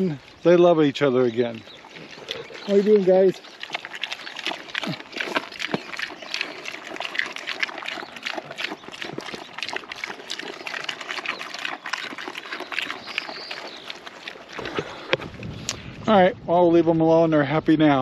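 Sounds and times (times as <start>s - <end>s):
pigs crunching feed: 0.0s - 15.9s.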